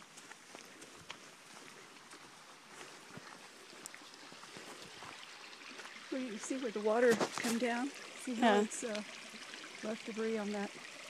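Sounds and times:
footsteps on trail: 0.0s - 6.1s
creek running over rocks: 0.0s - 11.0s.

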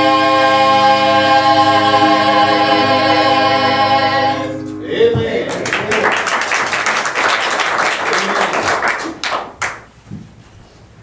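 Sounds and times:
congregation applauding: 5.3s - 9.9s.

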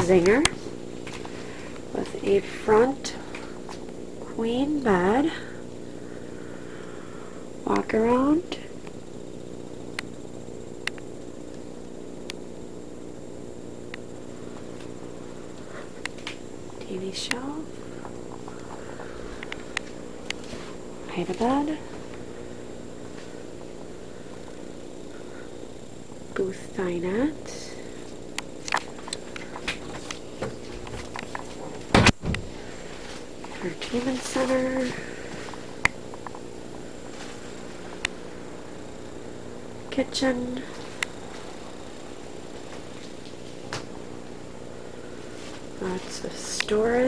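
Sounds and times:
steady low hum: 0.0s - 47.0s
footsteps: 18.0s - 22.2s, 28.8s - 35.8s.

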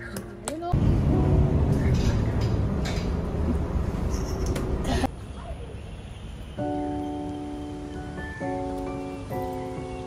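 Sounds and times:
road noise: 0.0s - 10.0s
bus engine rumble: 0.6s - 6.6s.

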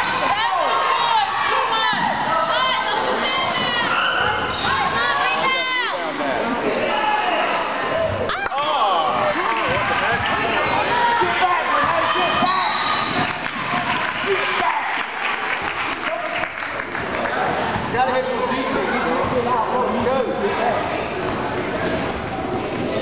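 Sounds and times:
sneakers squeaking: 1.9s - 5.5s, 7.4s - 13.7s.

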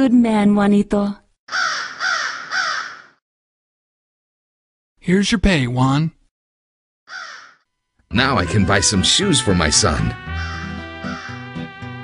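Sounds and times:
crow cawing: 1.5s - 3.2s, 7.1s - 7.7s, 10.3s - 11.7s.

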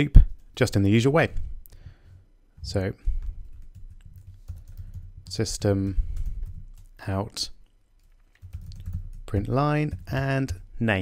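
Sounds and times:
keyboard typing: 3.2s - 7.0s, 8.0s - 10.6s.

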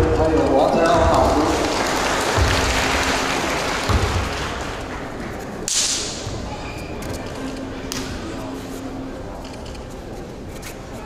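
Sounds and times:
audience applause: 1.0s - 5.3s.

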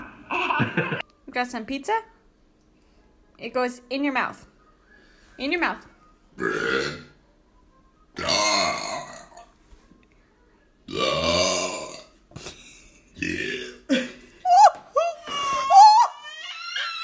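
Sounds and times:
person belching loudly: 6.4s - 7.2s, 8.2s - 9.5s, 10.9s - 12.1s, 13.2s - 14.1s.

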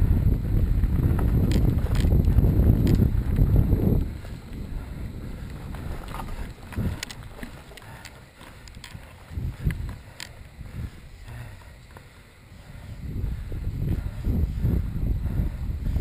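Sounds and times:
bike tyre rumble: 0.0s - 16.0s
wind buffeting microphone: 0.0s - 16.0s
thumps and clicks from bumps: 1.1s - 4.1s.

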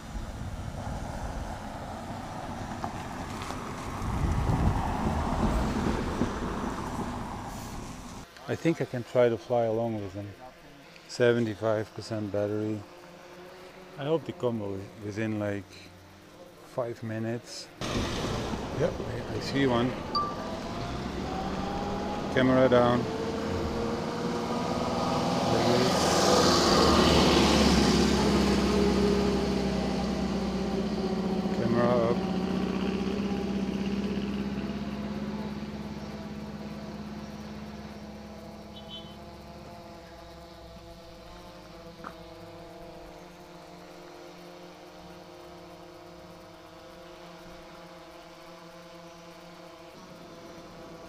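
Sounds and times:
car engine driving away: 0.0s - 8.3s, 17.8s - 51.0s.

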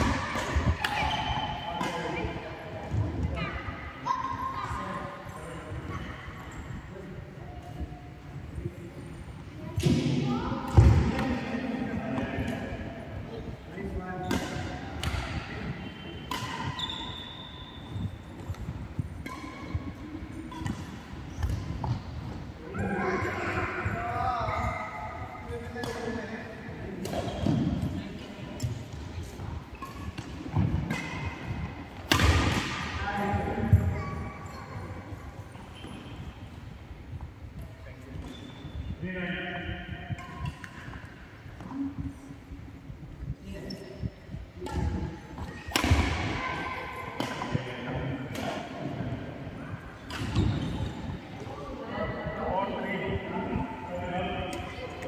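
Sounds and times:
racket striking shuttlecock: 32.0s - 32.9s.

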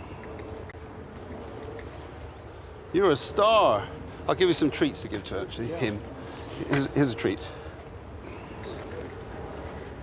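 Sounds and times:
faint ticks: 0.0s - 2.4s
outdoor background rumble: 0.0s - 10.0s.

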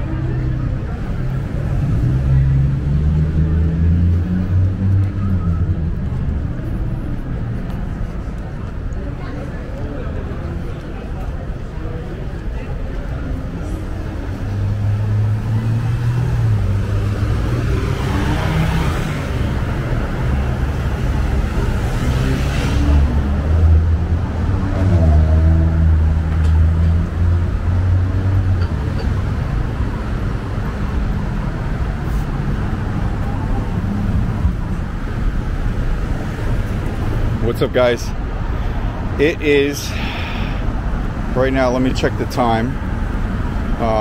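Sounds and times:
vehicle engines passing: 0.0s - 44.0s.

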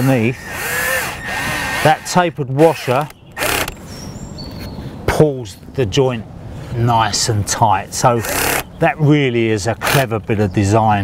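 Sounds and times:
cordless drill tightening bolt: 0.0s - 3.8s, 8.2s - 8.7s, 9.8s - 10.1s.

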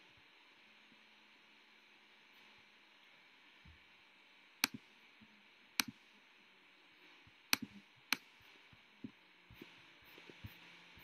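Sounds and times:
faint room hum: 0.0s - 11.0s
computer mouse click: 5.8s - 6.0s, 7.5s - 8.3s.

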